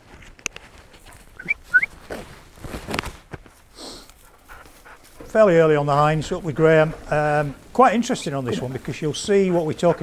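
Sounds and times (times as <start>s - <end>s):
clothing and kit rustling: 0.0s - 5.5s
footsteps through heather: 0.0s - 10.0s.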